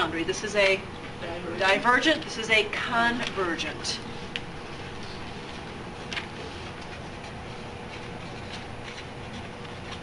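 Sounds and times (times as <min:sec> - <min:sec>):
faint steady hum: 0:00.0 - 0:10.0
marker scratching on paper: 0:04.7 - 0:10.0.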